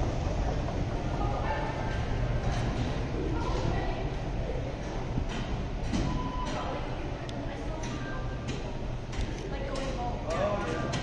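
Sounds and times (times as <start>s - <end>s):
subway station rumble: 0.0s - 11.0s.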